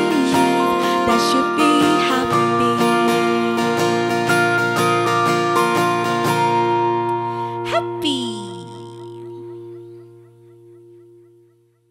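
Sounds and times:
acoustic guitar strum: 0.0 - 11.8
keyboard chord ringing out: 0.0 - 11.9.

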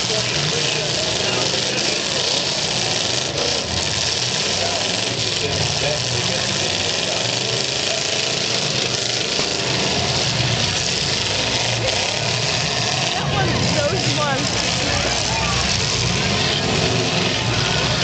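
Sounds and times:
car engines rumbling: 0.0 - 18.0
crowd voices: 0.0 - 18.0.

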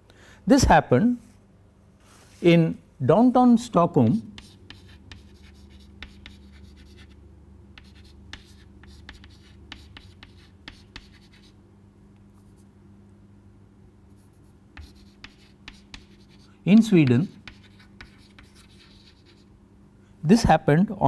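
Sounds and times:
steady low hum: 0.0 - 21.0
chalk scratching on blackboard: 4.4 - 7.2, 7.8 - 11.6, 14.2 - 19.5.

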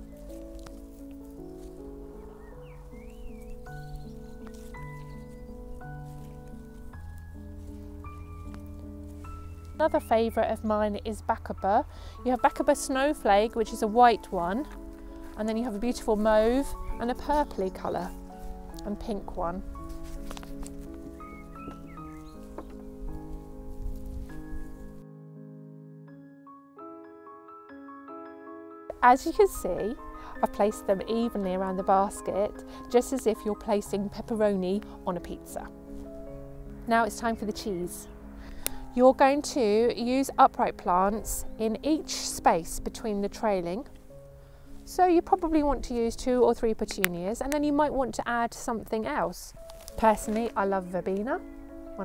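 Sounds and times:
background music of held notes: 0.0 - 52.0
soft sustained chords: 0.0 - 52.0
soft clicks and knocks of planting: 0.4 - 1.8, 19.8 - 21.9, 49.6 - 50.6.

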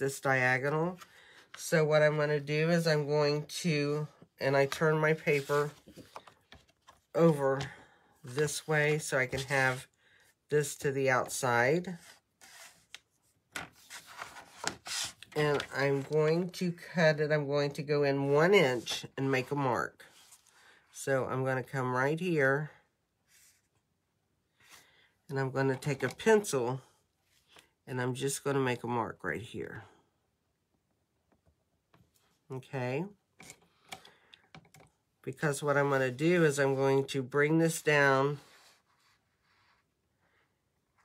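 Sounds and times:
cardstock rustling: 12.0 - 16.5.

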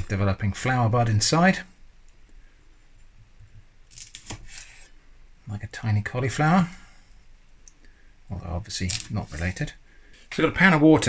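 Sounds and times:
knife slicing flower buds: 3.9 - 4.9.

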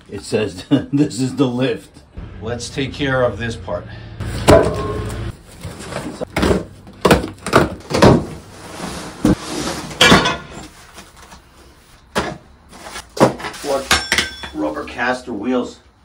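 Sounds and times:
cardboard box thumps and scrapes: 5.5 - 10.7.

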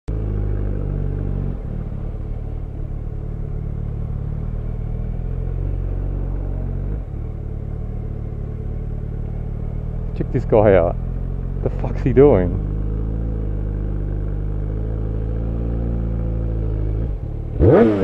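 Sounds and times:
motorcycle engine running at low revs: 0.1 - 18.0.

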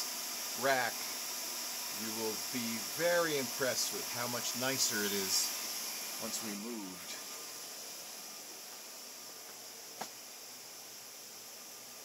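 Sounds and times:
cooling fans hissing: 0.0 - 12.0.

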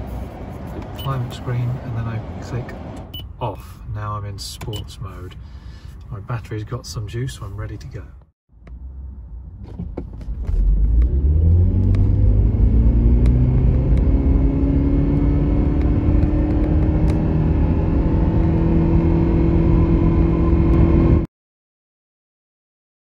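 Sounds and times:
road noise: 0.0 - 21.3
car engine accelerating: 8.6 - 21.3.

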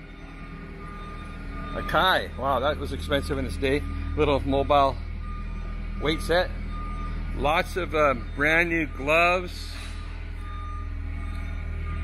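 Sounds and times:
reversing alarm beeps: 0.0 - 12.0
steady low hum: 0.0 - 12.0.

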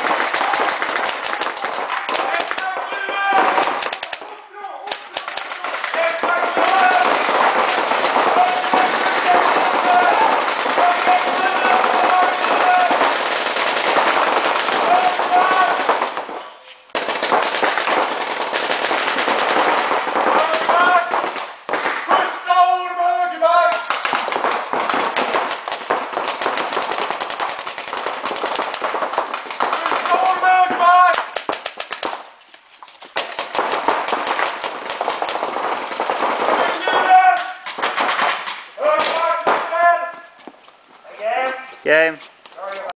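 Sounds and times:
people shouting: 0.0 - 16.2, 20.2 - 21.3, 29.6 - 31.4, 36.4 - 37.6
markers firing rubber balls: 0.0 - 22.2, 23.7 - 39.7.

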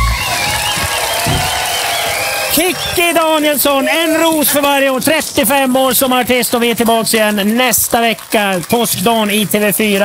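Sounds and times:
audience applauding and cheering: 0.0 - 10.0.

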